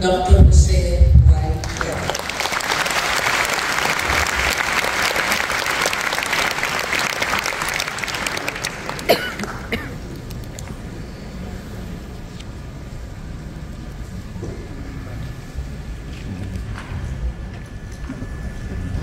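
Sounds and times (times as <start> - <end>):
audience applauding: 1.6 - 10.6.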